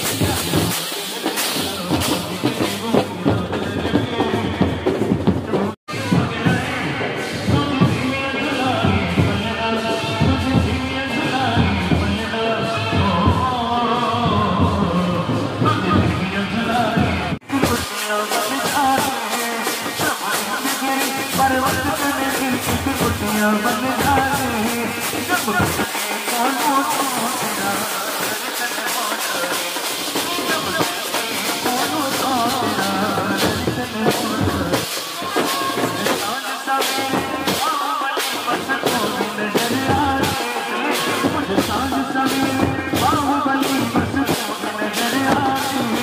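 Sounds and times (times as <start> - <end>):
man singing through loudspeaker: 0.0 - 46.0
marching drums: 0.0 - 46.0.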